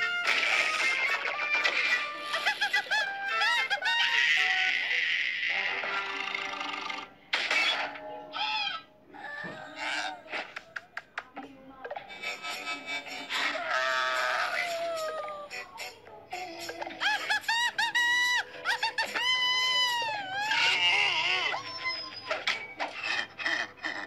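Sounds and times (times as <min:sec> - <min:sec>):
lively cartoon music: 0:00.0 - 0:09.0, 0:12.0 - 0:24.0.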